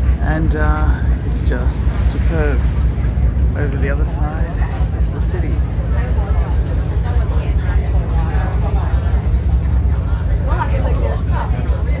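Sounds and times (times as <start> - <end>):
ferry engine drone: 0.0 - 12.0
passengers' voices: 0.0 - 12.0.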